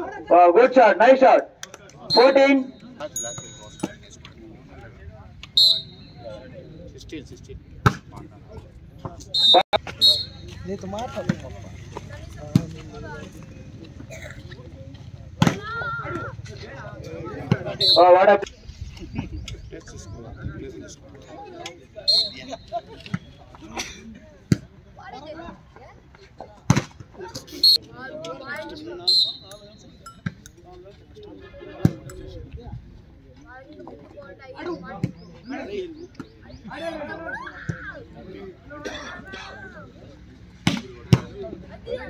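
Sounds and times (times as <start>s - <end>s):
spectators chattering: 0.0s - 42.0s.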